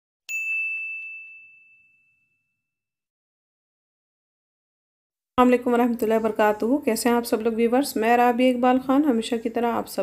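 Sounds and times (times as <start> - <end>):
bell-like ding: 0.3 - 2.8.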